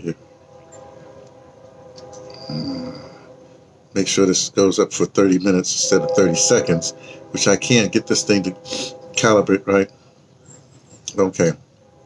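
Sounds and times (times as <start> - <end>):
faint steady drone: 0.0 - 12.0.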